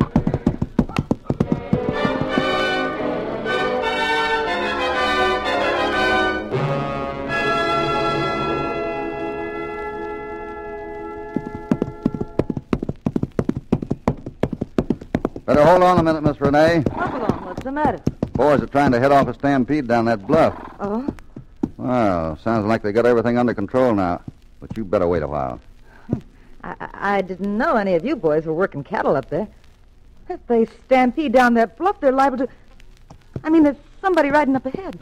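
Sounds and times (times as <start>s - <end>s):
galloping horse hoofbeats: 0.0s - 3.0s, 11.0s - 22.1s, 23.3s - 25.2s
music bridge: 1.4s - 12.4s.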